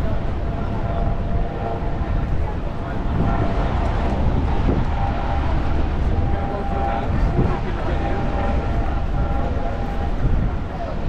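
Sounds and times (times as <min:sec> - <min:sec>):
faint chatter of pedestrians: 0:00.0 - 0:11.0
low rumble: 0:00.0 - 0:11.0
road traffic: 0:00.0 - 0:11.0.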